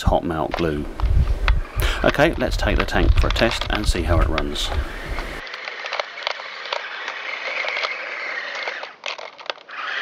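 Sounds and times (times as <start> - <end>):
plastic tracks clicking: 0.3 - 10.0
small electric motors whining: 1.0 - 10.0.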